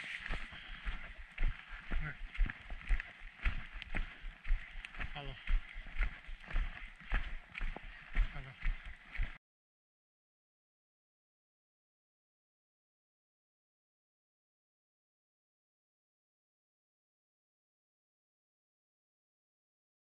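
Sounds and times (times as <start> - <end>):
footsteps on dirt trail: 0.0 - 9.4.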